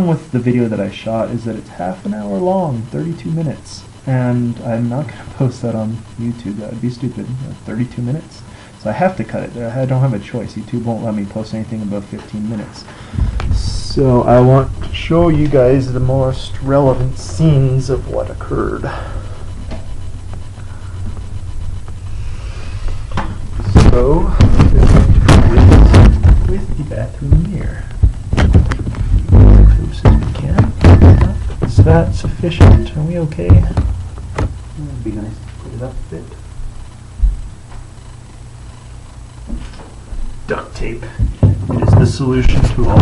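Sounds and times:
steady low hum: 0:00.0 - 0:43.0
low handling rumble: 0:13.0 - 0:43.0
knocks and bumps: 0:23.1 - 0:34.7, 0:41.2 - 0:43.0.

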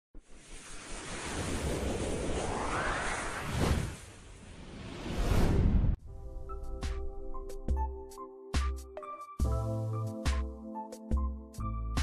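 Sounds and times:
whoosh sound effect: 0:00.3 - 0:06.0.

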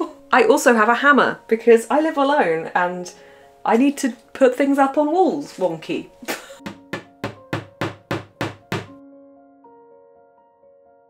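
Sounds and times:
hammer striking nail: 0:06.6 - 0:09.0.

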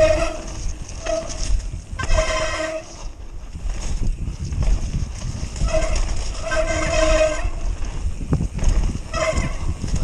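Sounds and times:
flat-pitched whine from bike: 0:00.0 - 0:10.0
tyres rumbling over dirt trail: 0:00.0 - 0:10.0
wind rushing over camera: 0:00.0 - 0:10.0.

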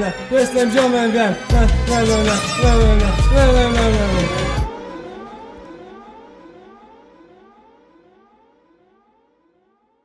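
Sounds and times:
siren-like electronic tone: 0:00.0 - 0:09.4.

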